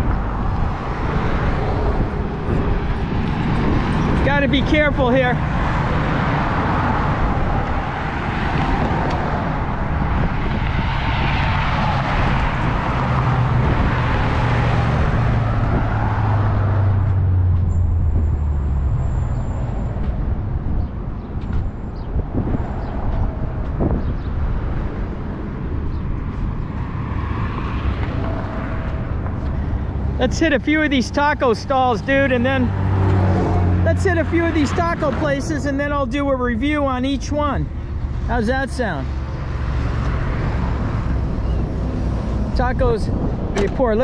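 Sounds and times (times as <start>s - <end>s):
highway traffic passing: 0.0s - 44.0s.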